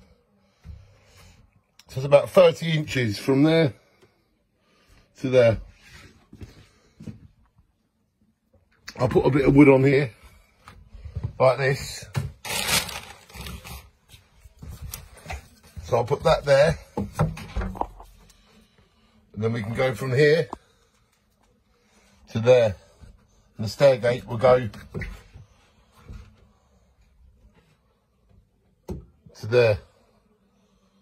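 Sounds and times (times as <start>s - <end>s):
plastic bag rustling: 12.2s - 14.1s.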